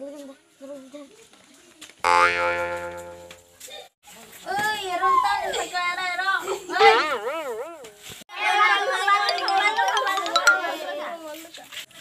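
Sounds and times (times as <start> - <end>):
cartoon boing sound effect: 2.1 - 3.4.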